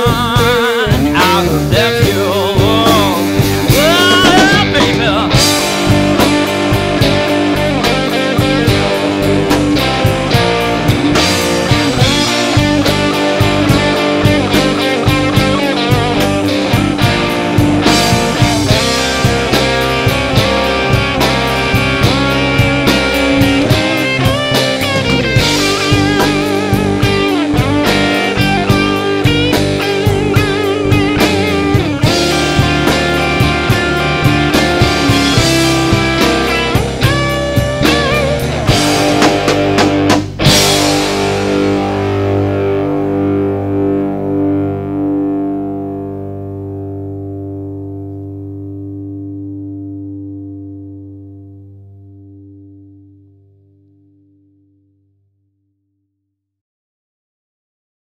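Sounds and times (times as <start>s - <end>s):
rock band playing: 0.0s - 52.6s.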